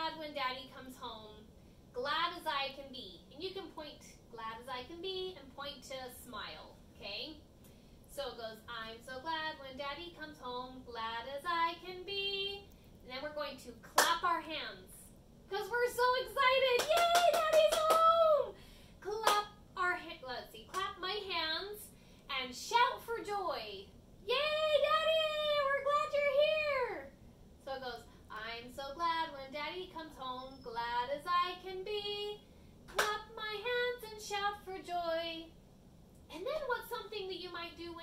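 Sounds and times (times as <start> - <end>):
woman singing: 8.3 - 12.6, 15.5 - 21.8, 24.3 - 27.1, 27.8 - 35.5
sharp hand claps: 14.0 - 14.2, 16.8 - 18.1, 32.9 - 33.2.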